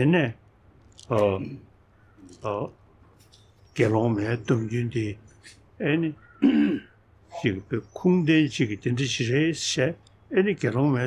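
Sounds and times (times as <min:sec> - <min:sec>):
elderly man speaking: 0:00.0 - 0:00.4, 0:01.0 - 0:02.8, 0:03.8 - 0:11.0.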